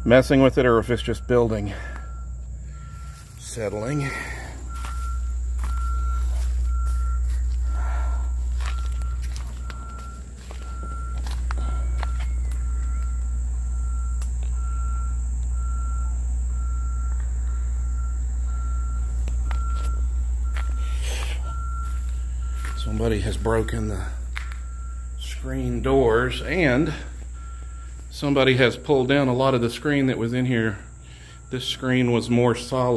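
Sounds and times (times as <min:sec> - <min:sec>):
low microphone rumble: 0:00.0 - 0:28.2
insects chirring: 0:00.0 - 0:32.9
pulsing insect chirp: 0:00.0 - 0:32.9
footsteps: 0:01.9 - 0:13.3, 0:19.0 - 0:25.4.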